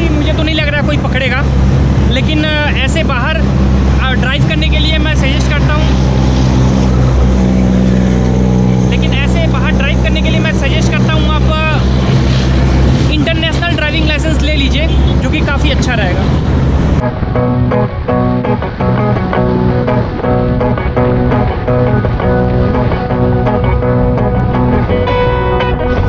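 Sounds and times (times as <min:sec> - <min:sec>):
heavy road traffic drone: 0:00.0 - 0:26.0.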